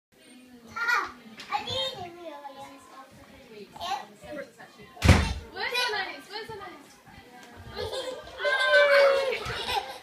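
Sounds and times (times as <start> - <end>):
toddlers calling: 7.8 - 10.0.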